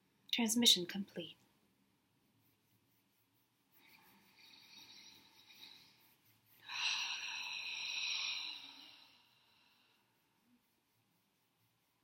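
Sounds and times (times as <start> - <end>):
person breathing deeply: 4.0 - 10.1.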